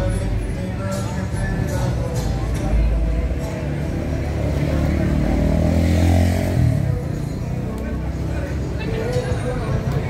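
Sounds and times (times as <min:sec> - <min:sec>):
street noise: 0:00.0 - 0:10.0
car engine accelerating: 0:03.3 - 0:08.8.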